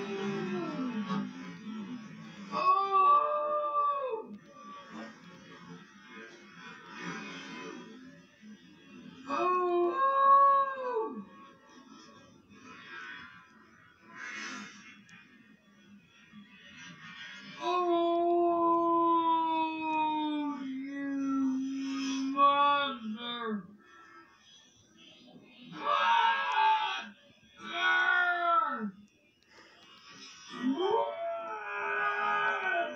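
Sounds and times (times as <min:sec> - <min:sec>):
slowed-down person crying out: 0:30.7 - 0:32.9.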